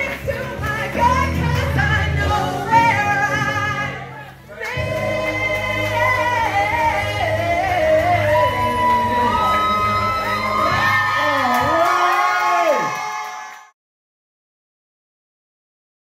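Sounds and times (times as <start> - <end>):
backing track with steady bass: 0.0 - 12.1
person singing: 0.0 - 13.0.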